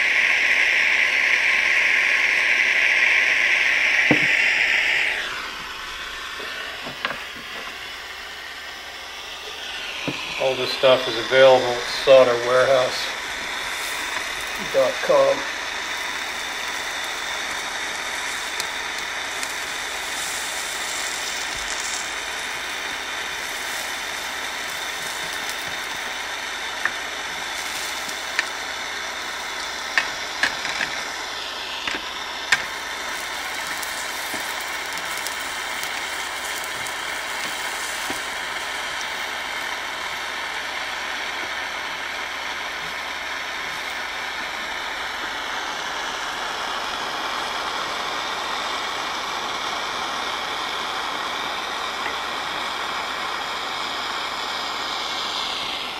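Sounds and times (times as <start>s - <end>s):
torch flame burning: 0.0s - 55.9s.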